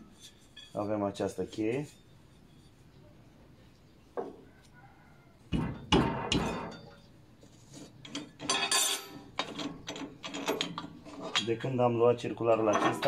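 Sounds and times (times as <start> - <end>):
spanner clanking on metal nut: 8.0 - 11.7, 12.5 - 13.0.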